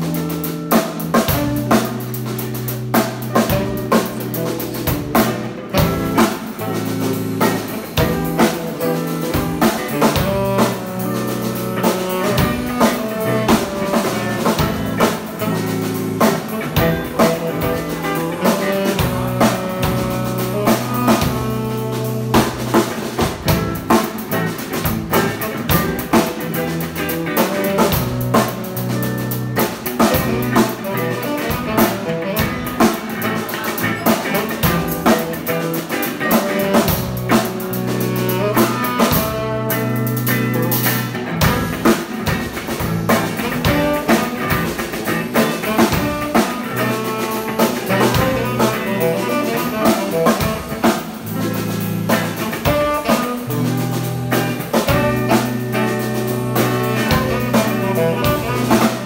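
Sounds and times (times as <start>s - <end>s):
drums keeping steady beat: 0.0s - 59.0s
live blues-jazz band: 0.0s - 59.0s.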